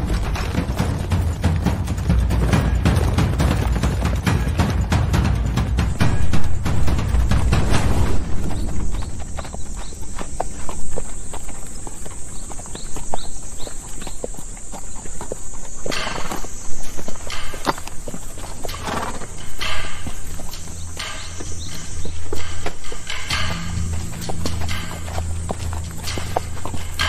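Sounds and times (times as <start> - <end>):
hooves clip-clopping on dirt: 0.0 - 27.0.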